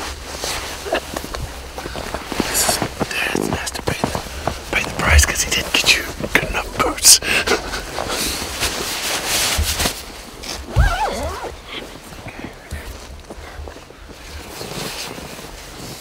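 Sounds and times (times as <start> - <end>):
clothing and gear rustling: 0.0 - 16.0.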